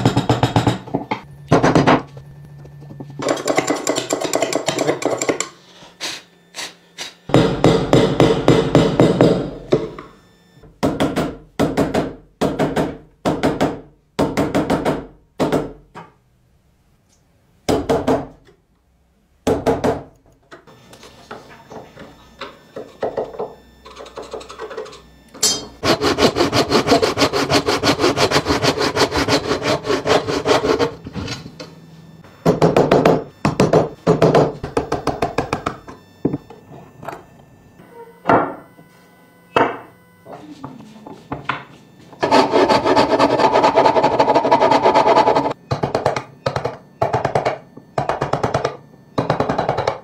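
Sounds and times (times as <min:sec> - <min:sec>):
hammer striking steel chisel: 0:25.4 - 0:25.8
hand saw cutting wood: 0:25.8 - 0:31.0, 0:42.2 - 0:45.5.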